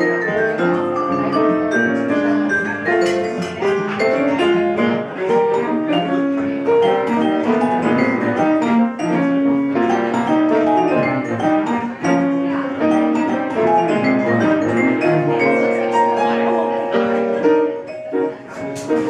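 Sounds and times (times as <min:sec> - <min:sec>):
bowed cello: 0:00.0 - 0:18.3
vibraphone played with mallets: 0:00.0 - 0:19.0.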